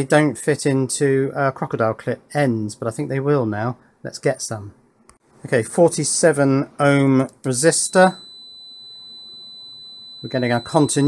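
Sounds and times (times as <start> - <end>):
multimeter continuity beep: 7.6 - 11.0.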